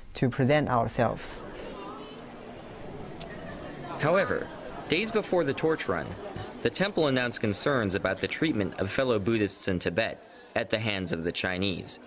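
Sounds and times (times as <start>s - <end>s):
faint background noise: 0.0s - 12.0s
small chimes ringing: 1.2s - 9.0s.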